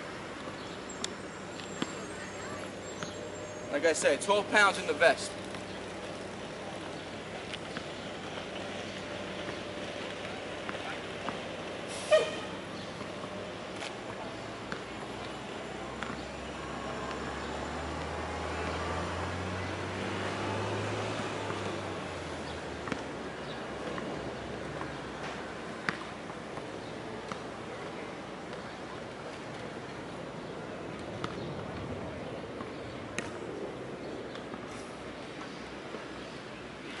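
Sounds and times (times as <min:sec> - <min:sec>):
heavy vehicle rumble: 0:00.0 - 0:37.0.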